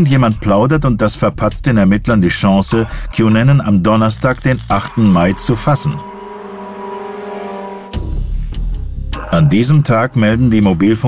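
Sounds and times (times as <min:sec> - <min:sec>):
car engine humming: 0:02.7 - 0:08.5.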